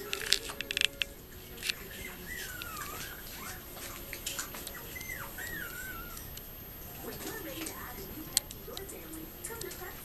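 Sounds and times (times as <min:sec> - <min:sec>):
puppy whimpering: 0:01.6 - 0:06.4.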